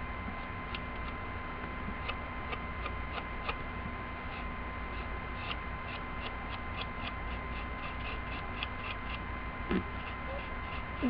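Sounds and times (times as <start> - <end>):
low electrical hum and hiss: 0.0 - 11.0.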